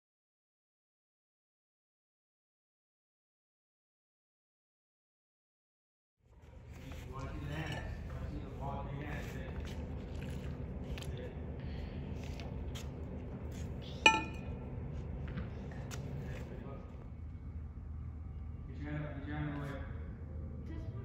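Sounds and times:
low room hum: 0:06.3 - 0:21.0
ball clinking on metal: 0:14.1 - 0:14.5.

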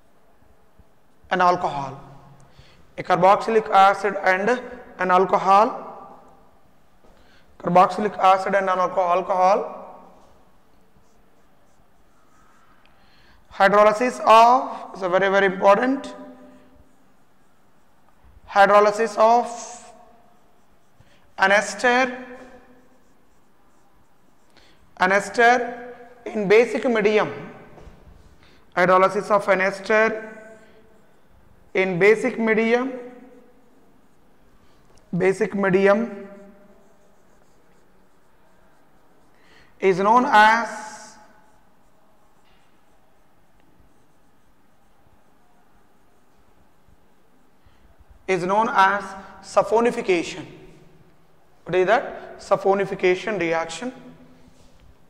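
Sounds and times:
marker writing on a whiteboard: 0:00.1 - 0:55.0
man speaking: 0:01.3 - 0:02.3, 0:03.0 - 0:06.2, 0:07.6 - 0:10.2, 0:13.5 - 0:16.4, 0:18.5 - 0:20.0, 0:21.4 - 0:22.6, 0:25.0 - 0:27.6, 0:28.7 - 0:30.5, 0:31.7 - 0:33.3, 0:35.1 - 0:36.6, 0:39.8 - 0:41.4, 0:48.3 - 0:50.8, 0:51.6 - 0:54.2.

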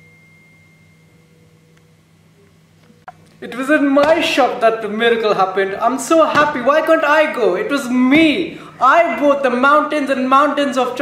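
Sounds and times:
high sustained tone: 0:00.0 - 0:03.1
lower sustained tone: 0:00.0 - 0:03.1.

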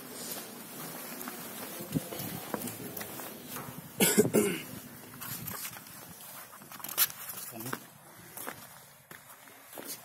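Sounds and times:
person coughing: 0:04.0 - 0:04.7.

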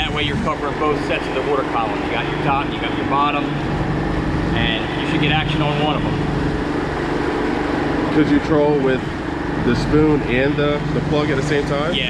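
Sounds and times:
boat motor running: 0:00.0 - 0:12.0.

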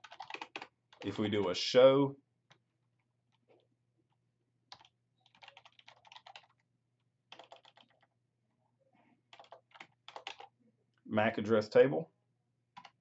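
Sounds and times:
computer keyboard typing: 0:00.0 - 0:01.5, 0:04.7 - 0:06.6, 0:07.3 - 0:08.1, 0:09.3 - 0:10.5, 0:12.7 - 0:13.0.

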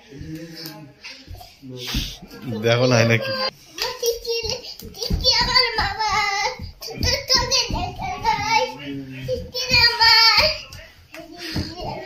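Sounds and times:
small child singing: 0:03.0 - 0:12.0.

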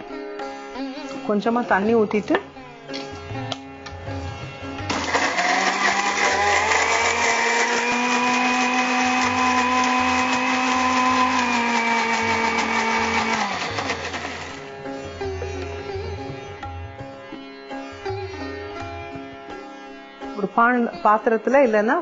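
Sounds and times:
mixer grinder motor running: 0:04.9 - 0:14.8.

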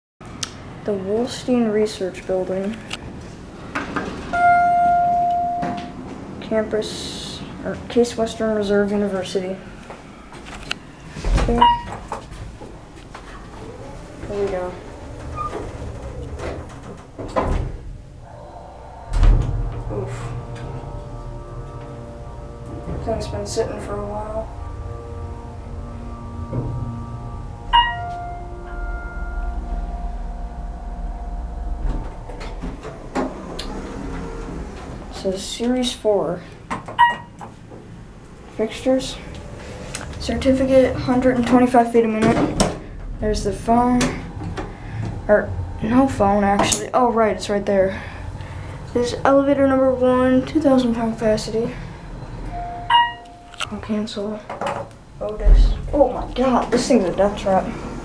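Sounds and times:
elevator call button click: 0:04.3 - 0:06.0, 0:52.5 - 0:53.7
elevator chime tone: 0:04.3 - 0:06.3, 0:11.5 - 0:17.1, 0:18.1 - 0:35.6, 0:37.0 - 0:54.1
elevator door clicks and knocks: 0:14.1 - 0:17.9.

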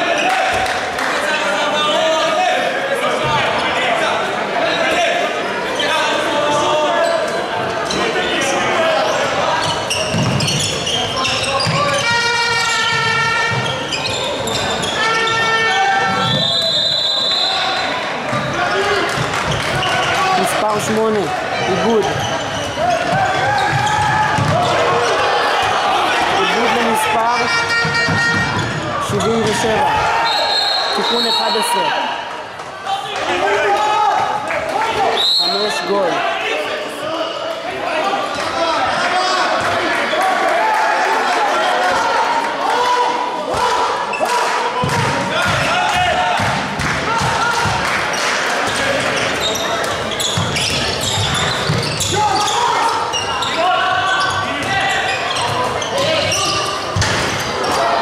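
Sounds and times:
voices echoing in a hall: 0:00.0 - 0:58.0
shoes squeaking: 0:09.1 - 0:17.2, 0:19.5 - 0:25.2, 0:49.1 - 0:57.8
ball bouncing on wooden court: 0:10.0 - 0:10.9, 0:23.0 - 0:24.8, 0:49.8 - 0:52.1
high steady whistle: 0:16.3 - 0:17.8.

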